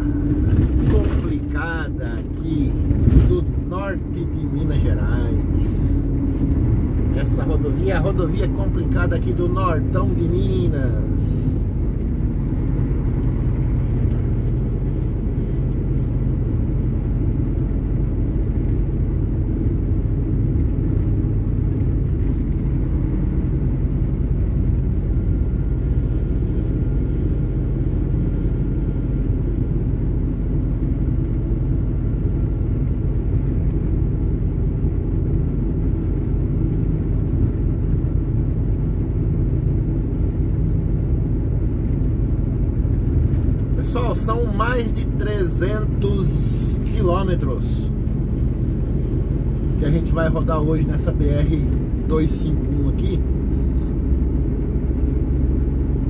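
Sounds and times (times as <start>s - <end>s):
truck engine and tyres rumbling: 0.0s - 56.0s.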